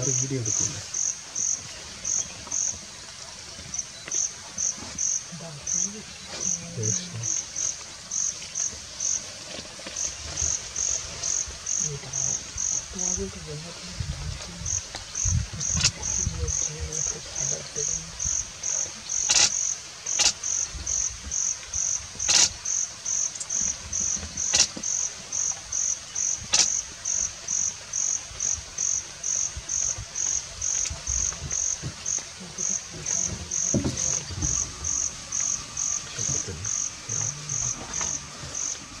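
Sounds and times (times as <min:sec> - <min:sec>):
insect chirping: 0:00.0 - 0:39.0
sharp clicks: 0:19.2 - 0:20.4.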